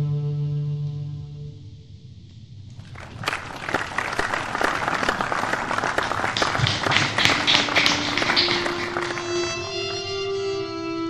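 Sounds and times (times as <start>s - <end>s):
low violin notes: 7.5s - 11.0s.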